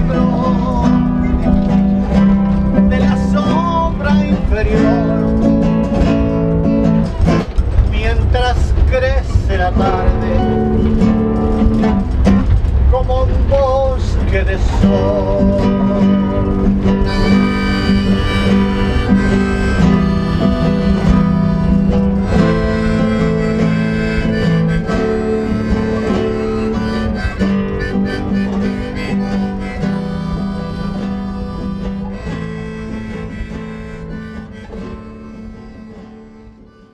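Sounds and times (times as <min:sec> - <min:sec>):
acoustic guitar strummed and plucked: 0:00.0 - 0:36.9
harmonica playing chords: 0:15.8 - 0:36.9.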